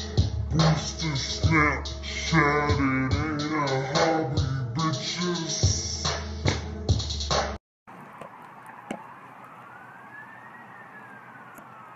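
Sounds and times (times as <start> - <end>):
distant siren wailing: 7.9 - 11.9.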